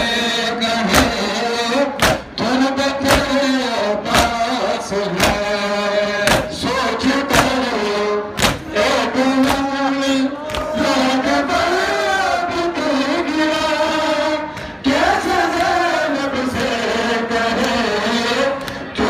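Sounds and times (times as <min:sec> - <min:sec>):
men chanting together: 0:00.0 - 0:19.0
hands slapping bare chests: 0:02.0 - 0:02.2, 0:08.4 - 0:08.6.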